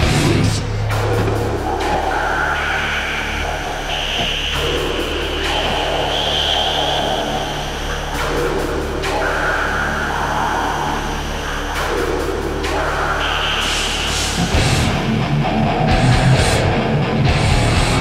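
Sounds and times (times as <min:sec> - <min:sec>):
live metal band playing: 0:00.0 - 0:02.0, 0:13.7 - 0:18.0
low bass drone: 0:00.0 - 0:18.0.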